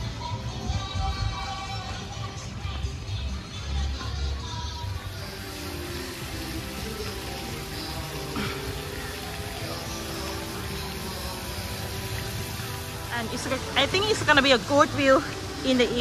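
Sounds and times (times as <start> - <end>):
background music: 0.0 - 16.0
splashing water hiss: 5.1 - 16.0.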